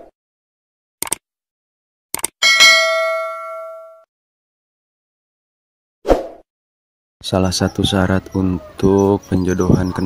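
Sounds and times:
notification bell chime: 2.4 - 4.0.

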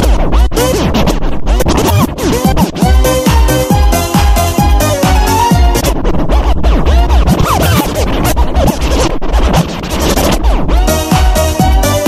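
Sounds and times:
electronic dance music: 0.0 - 12.0
turntable scratching: 0.0 - 12.0.

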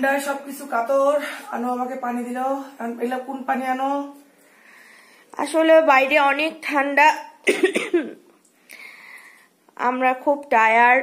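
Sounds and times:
faint steady hiss: 0.0 - 11.0
woman coughing: 7.4 - 8.2.

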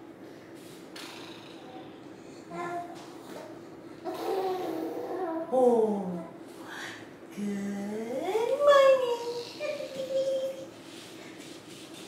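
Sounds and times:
low background hum: 0.0 - 12.0
baby cooing and babbling: 2.5 - 5.6.

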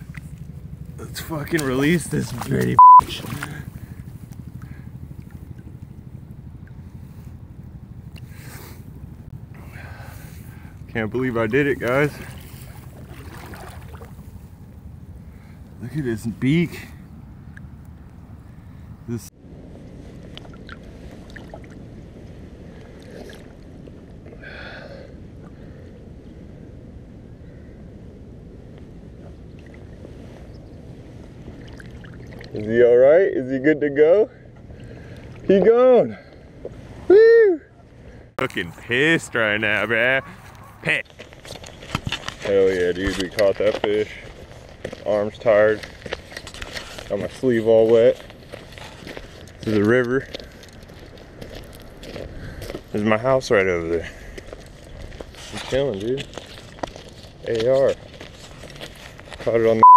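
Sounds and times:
shallow river water lapping: 0.0 - 15.8, 20.0 - 26.8, 29.0 - 32.7, 34.4 - 37.1
light water splashes: 1.4 - 5.8, 11.8 - 14.6, 20.2 - 21.8, 31.3 - 32.7, 34.6 - 35.7.

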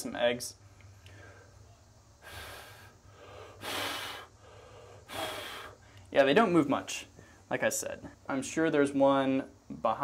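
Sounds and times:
person breathing close to microphone: 2.2 - 6.1.

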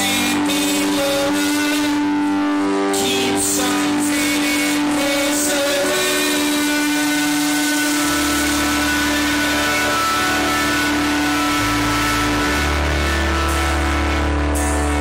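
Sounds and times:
bass notes: 0.0 - 15.0
live rock band playing: 0.0 - 15.0.

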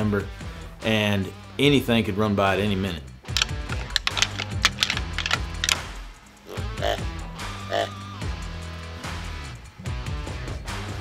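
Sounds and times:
background music: 0.0 - 11.0
antlers rattling and clacking: 3.3 - 6.0.

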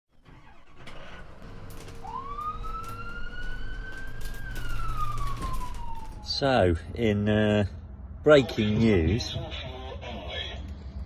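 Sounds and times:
siren wailing: 1.4 - 6.8.

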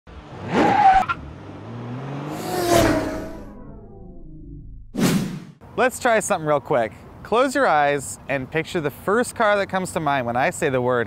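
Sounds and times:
long whoosh with pitched tones: 1.9 - 5.6
short swish: 2.3 - 4.2, 4.8 - 5.6.

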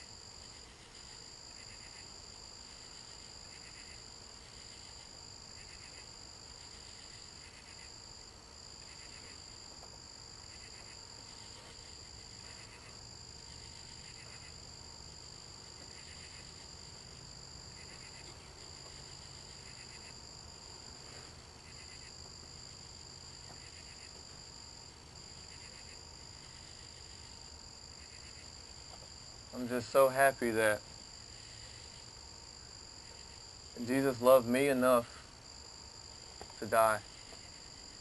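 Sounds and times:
insects droning: 0.0 - 38.0
pulsed frog calls: 10.5 - 14.8, 17.7 - 20.2.

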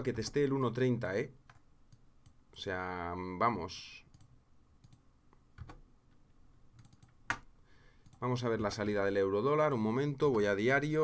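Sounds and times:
computer clicks: 4.1 - 5.0, 6.8 - 8.3.

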